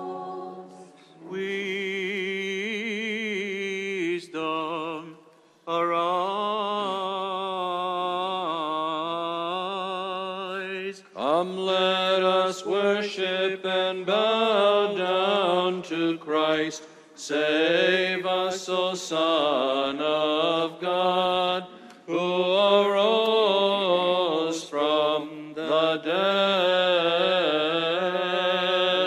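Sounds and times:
cantor singing ornamented chant: 0:00.0 - 0:29.0.

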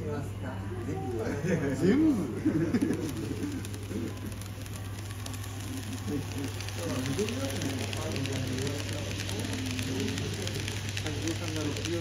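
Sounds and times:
murmur of voices: 0:00.0 - 0:12.0
steady low hum: 0:00.0 - 0:12.0
wheels clicking on track: 0:02.7 - 0:12.0
model train rumbling on track: 0:05.4 - 0:12.0.

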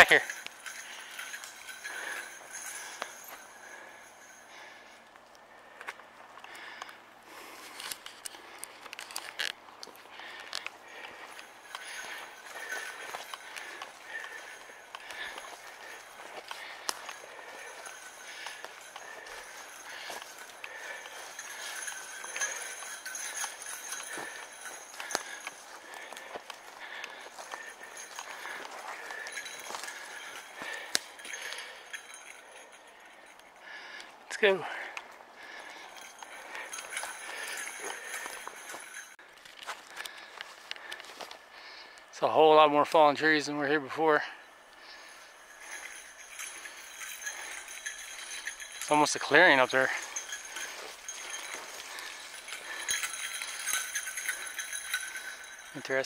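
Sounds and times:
small bell jingling: 0:00.0 - 0:05.0, 0:08.5 - 0:39.2, 0:41.7 - 0:56.0
footsteps through undergrowth: 0:07.4 - 0:32.5, 0:34.8 - 0:42.1, 0:44.7 - 0:56.0
footsteps and twig snaps: 0:07.7 - 0:10.8, 0:39.3 - 0:41.4.

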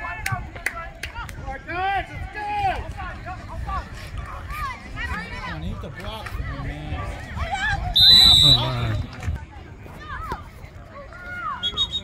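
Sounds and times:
players and spectators shouting: 0:01.5 - 0:09.3, 0:10.0 - 0:12.0.

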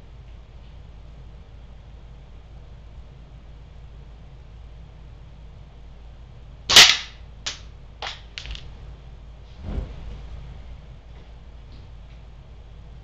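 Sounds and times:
air gun shot: 0:06.7 - 0:07.6
dull thump: 0:09.6 - 0:10.4.

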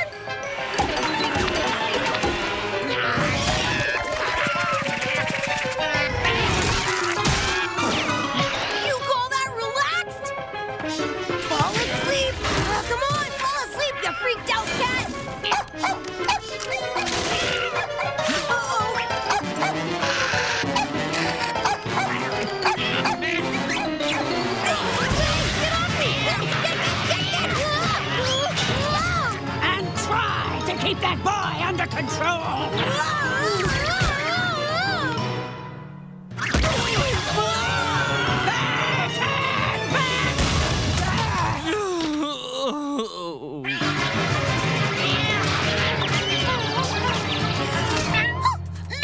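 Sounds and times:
busy music score: 0:00.0 - 0:41.0
cartoon animal cries: 0:02.8 - 0:08.8, 0:16.3 - 0:24.8, 0:37.0 - 0:40.4, 0:43.6 - 0:44.0
cartoon character wailing cry: 0:37.2 - 0:40.4.

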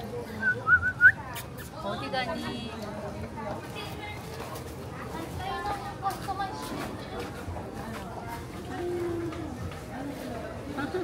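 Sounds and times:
outdoor hubbub: 0:00.0 - 0:11.0
people talking indistinctly: 0:00.0 - 0:11.0.

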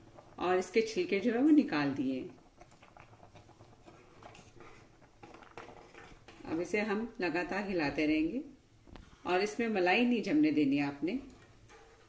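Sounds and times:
ladle stirring in metal pan: 0:00.0 - 0:07.1, 0:11.2 - 0:12.0.

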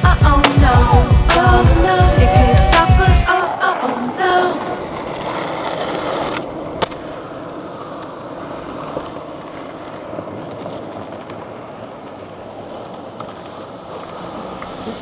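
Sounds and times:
skateboard clack: 0:00.0 - 0:15.0
skateboard wheels rolling on asphalt: 0:00.0 - 0:15.0.

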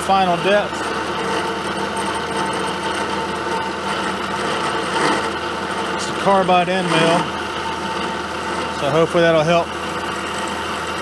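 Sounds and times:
milling machine cutting metal: 0:00.0 - 0:11.0.

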